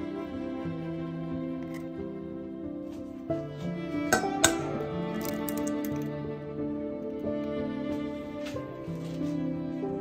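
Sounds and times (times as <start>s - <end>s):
soft background music: 0.0s - 10.0s
egg tapping on metal bowl: 4.1s - 6.0s
eggshell clicks: 4.2s - 6.1s.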